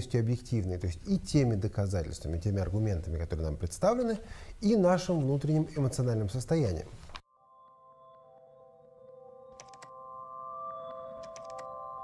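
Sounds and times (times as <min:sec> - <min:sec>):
speech: 0:00.0 - 0:06.9
held synth chord: 0:07.3 - 0:12.0.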